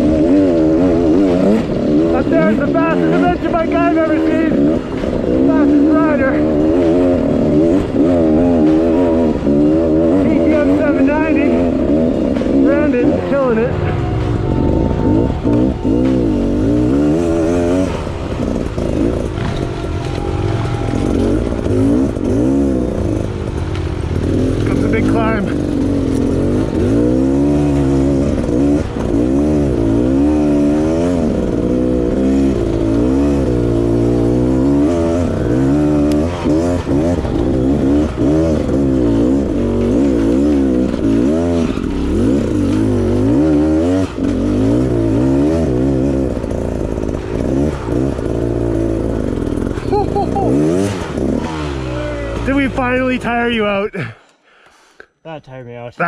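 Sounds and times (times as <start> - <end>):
motorcycle engine revving: 0.0 - 54.6.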